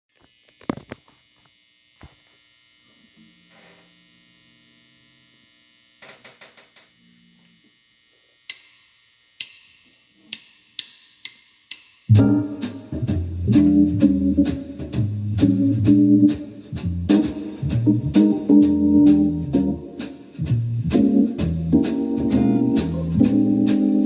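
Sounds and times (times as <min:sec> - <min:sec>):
faint electrical hum: 0:00.1 - 0:24.0.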